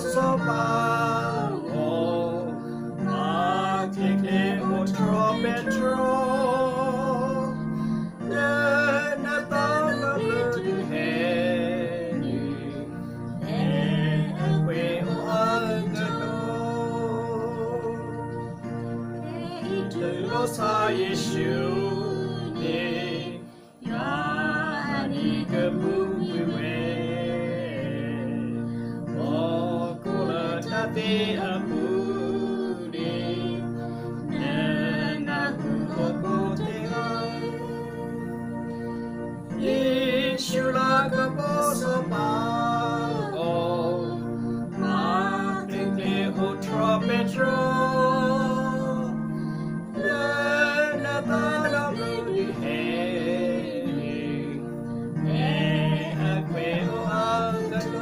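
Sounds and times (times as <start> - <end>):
instrumental accompaniment: 0.0 - 58.0
person singing a hymn: 0.0 - 58.0.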